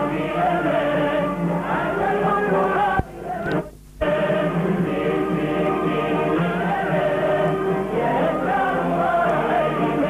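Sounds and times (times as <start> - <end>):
choir singing: 0.0 - 10.0
musical accompaniment: 0.0 - 10.0.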